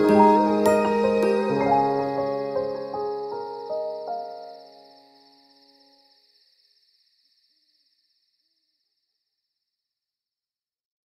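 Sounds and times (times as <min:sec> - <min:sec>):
song's last chord: 0:00.0 - 0:03.1
high insect chirr: 0:00.0 - 0:10.2.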